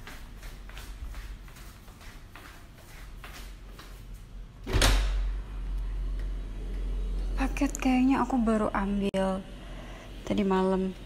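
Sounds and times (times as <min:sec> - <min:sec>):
footsteps in slippers on tiles: 0:00.0 - 0:04.5
low steady rumble: 0:05.2 - 0:11.0.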